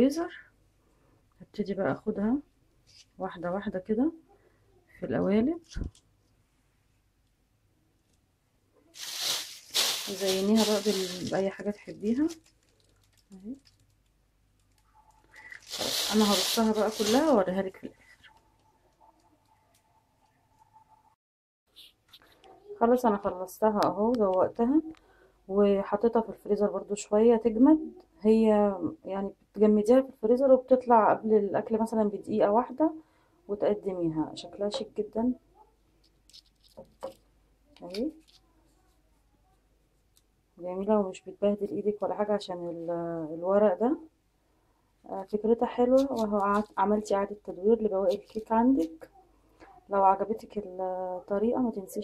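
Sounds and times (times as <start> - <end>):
crinkly hiss-like rustle: 8.9 - 19.8, 36.0 - 37.2, 37.8 - 38.9
paper cupcake case rustling: 9.0 - 13.9, 14.7 - 17.9, 45.2 - 47.1, 47.8 - 49.0.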